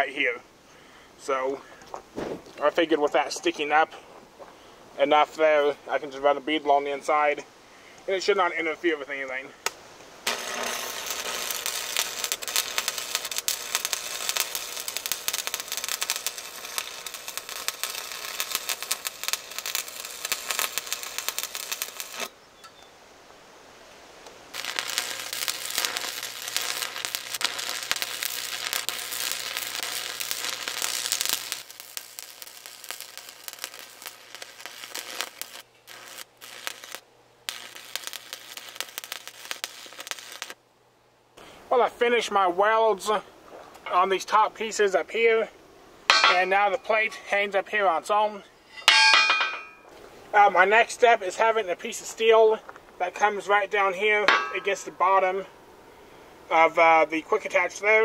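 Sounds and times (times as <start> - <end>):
arc welder crackling and sizzling: 9.6 - 22.4, 24.2 - 40.6, 46.0 - 50.1, 50.8 - 55.0.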